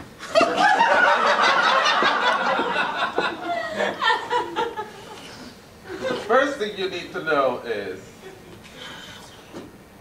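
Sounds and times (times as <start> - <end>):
audience laughing: 0.2 - 6.3.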